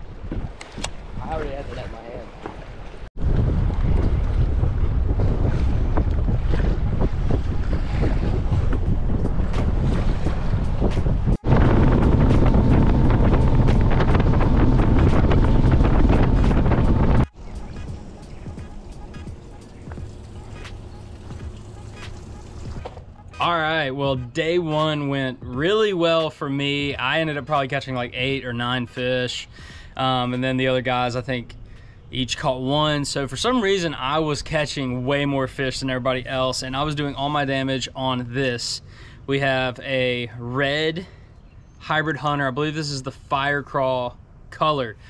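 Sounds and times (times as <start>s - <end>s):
wind rushing over microphone: 3.2s - 22.8s
outboard motor: 5.3s - 23.2s.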